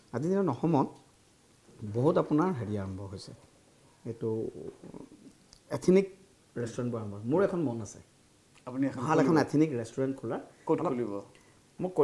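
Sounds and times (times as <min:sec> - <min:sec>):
man speaking: 0:01.8 - 0:05.1, 0:05.7 - 0:12.0.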